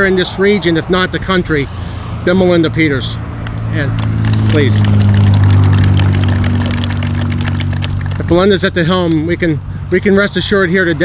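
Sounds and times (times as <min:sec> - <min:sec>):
engine idling: 0:01.8 - 0:11.0.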